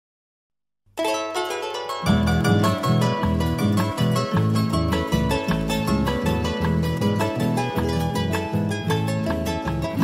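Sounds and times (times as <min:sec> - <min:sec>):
harp plucked melody: 0:01.0 - 0:10.0
steady bass line: 0:02.1 - 0:10.0.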